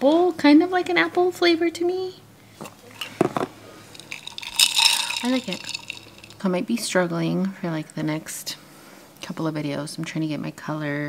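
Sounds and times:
straw clinking against glass: 0:03.9 - 0:06.4.

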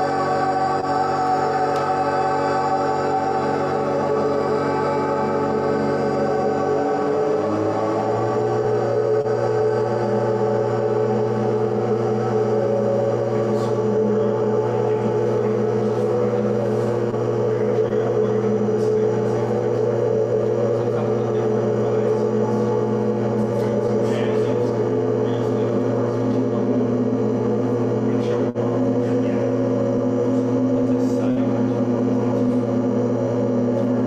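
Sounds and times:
ambient drone music: 0:00.0 - 0:34.0
deep low tone: 0:00.0 - 0:34.0.

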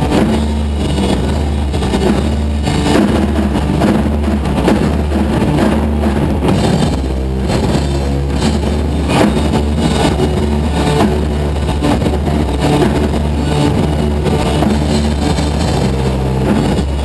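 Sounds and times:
drum hits: 0:00.0 - 0:17.0
electric guitar: 0:00.0 - 0:17.0
heavy bass drone: 0:00.0 - 0:17.0.

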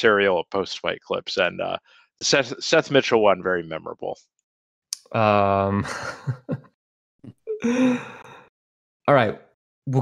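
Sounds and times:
person exhaling breathily: 0:07.6 - 0:08.5.

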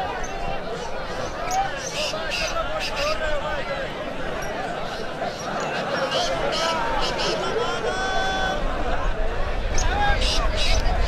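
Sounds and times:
crowd of men chattering: 0:00.0 - 0:11.0.

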